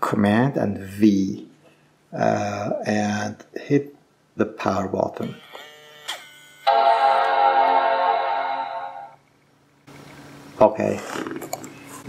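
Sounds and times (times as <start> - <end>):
computer startup chime: 6.7 - 9.2.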